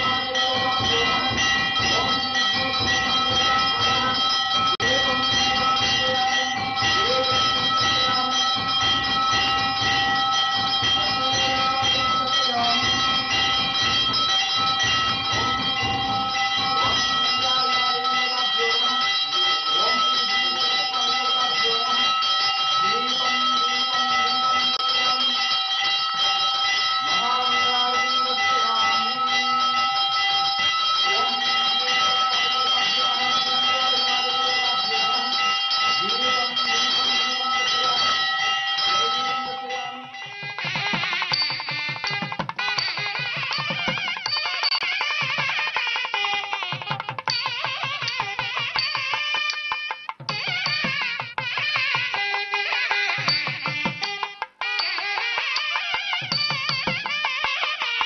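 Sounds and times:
temple bell ringing: 0.0s - 58.0s
voice chanting: 15.3s - 41.1s.

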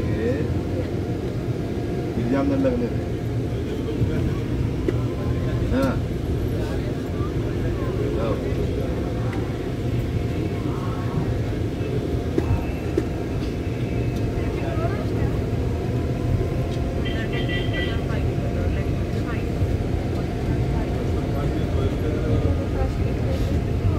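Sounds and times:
vehicle road and engine rumble: 0.0s - 23.9s.

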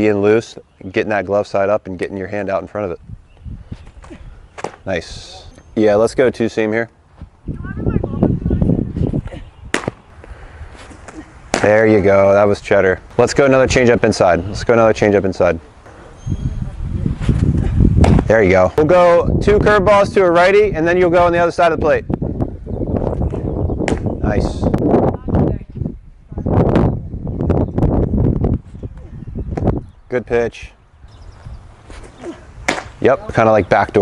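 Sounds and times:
wind rumbling on microphone: 2.2s - 34.0s
baseball popping into mitt: 4.0s - 4.8s, 9.7s - 10.0s, 10.8s - 11.7s, 18.0s - 18.3s, 23.3s - 24.1s, 31.9s - 33.0s
low rumbling rustle: 15.9s - 18.3s.

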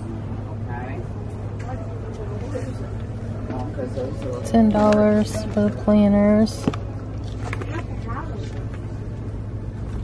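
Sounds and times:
faint voices: 0.0s - 9.8s
low store hum: 0.0s - 10.0s.

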